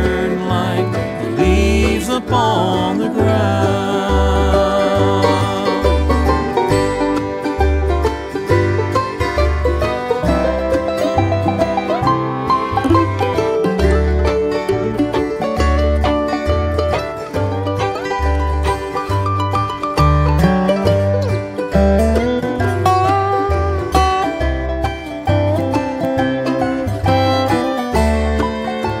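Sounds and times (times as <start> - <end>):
banjo picking: 0.0 - 29.0
bass line: 0.0 - 29.0
guitar backing: 0.0 - 29.0.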